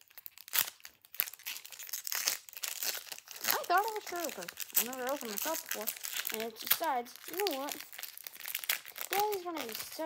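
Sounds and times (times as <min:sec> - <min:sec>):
foil wrapper crinkling and tearing: 0:00.0 - 0:10.0.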